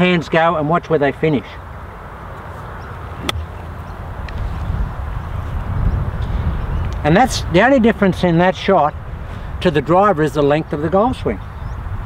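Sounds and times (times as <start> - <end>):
golf club striking ball: 3.2 - 3.6.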